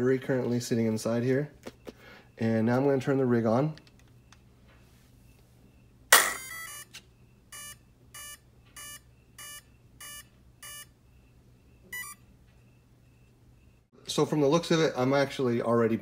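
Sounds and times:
short electronic beeps: 0:05.7 - 0:10.9, 0:11.8 - 0:12.3.

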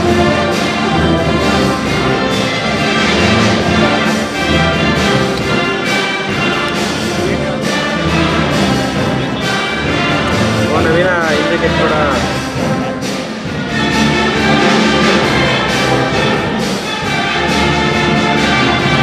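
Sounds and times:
brass band playing: 0:00.0 - 0:19.0.

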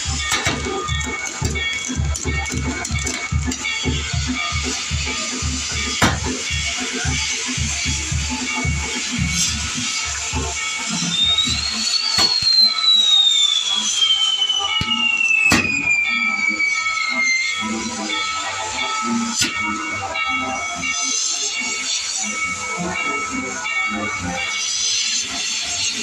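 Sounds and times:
fireworks fountains hissing: 0:00.0 - 0:26.0
music: 0:00.0 - 0:26.0
whistling firework: 0:00.0 - 0:26.0
firework bangs: 0:11.1 - 0:16.1.

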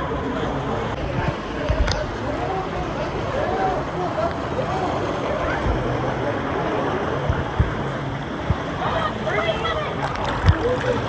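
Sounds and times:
faint voices: 0:00.0 - 0:11.0
low microphone rumble: 0:00.0 - 0:11.0
water rushing and sloshing: 0:00.0 - 0:11.0.

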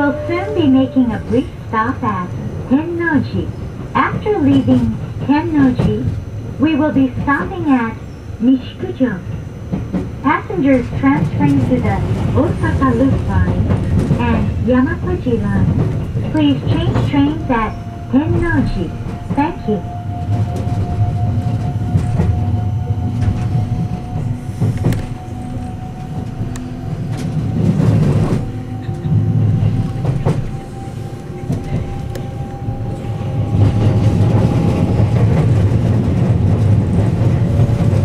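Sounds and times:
train motor whine: 0:00.0 - 0:03.4, 0:04.0 - 0:38.0
train wheels rumbling on rail: 0:00.0 - 0:38.0.

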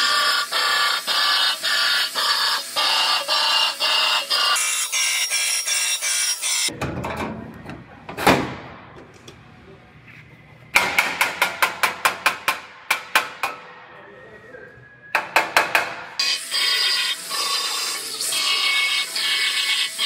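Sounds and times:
power tool whining: 0:16.2 - 0:20.0.

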